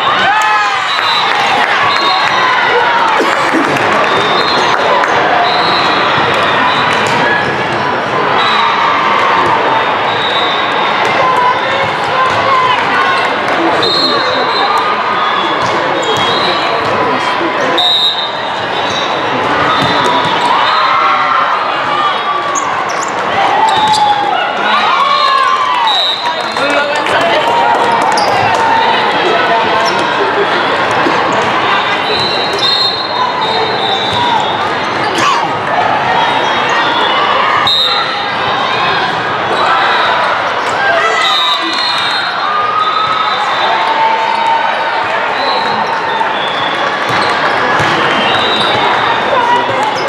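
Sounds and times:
voices and shouts: 0.0 - 50.0.

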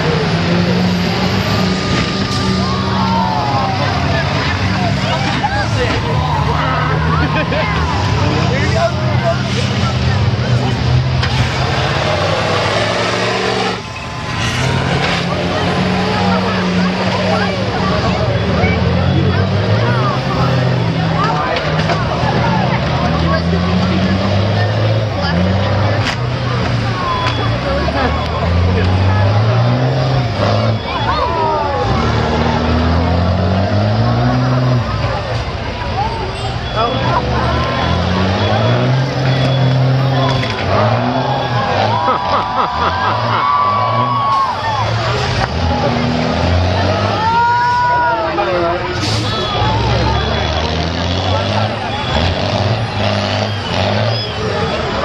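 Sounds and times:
bus engines revving: 0.0 - 55.0.

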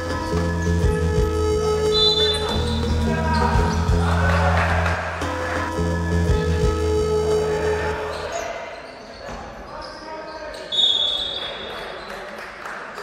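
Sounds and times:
players' voices: 1.8 - 13.0.

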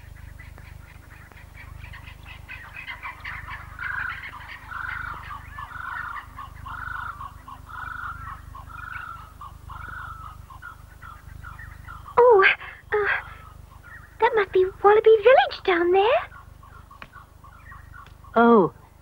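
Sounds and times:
birds chirping: 0.0 - 19.0.

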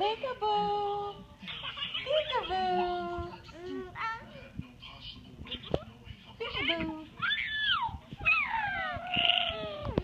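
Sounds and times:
baby squealing: 7.2 - 9.7.

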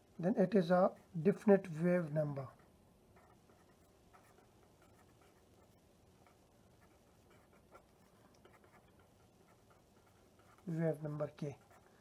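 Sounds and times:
pen scratching on paper: 2.5 - 12.0.

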